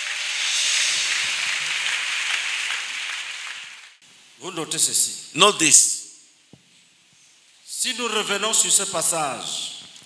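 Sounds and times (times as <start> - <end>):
congregation applauding: 0.0 - 4.0.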